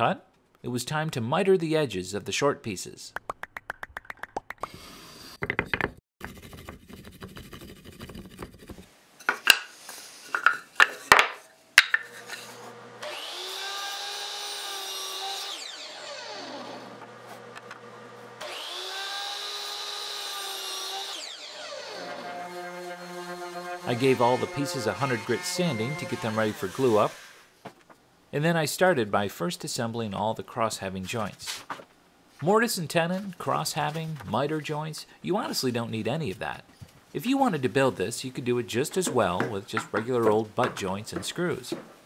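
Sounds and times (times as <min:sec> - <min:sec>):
miter saw cutting wood: 0:12.2 - 0:27.5.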